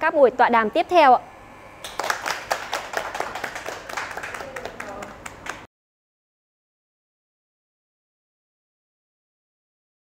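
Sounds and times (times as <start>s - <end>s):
people clapping: 1.8s - 5.7s.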